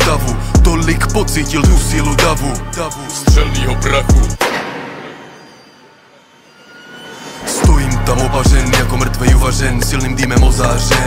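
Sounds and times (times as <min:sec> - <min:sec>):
bang: 0:04.4 - 0:06.1.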